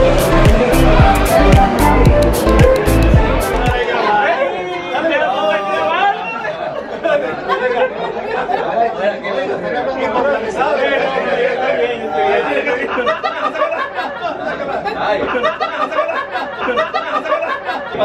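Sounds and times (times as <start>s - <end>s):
background music: 0.0s - 3.9s
people talking indistinctly: 0.0s - 18.0s.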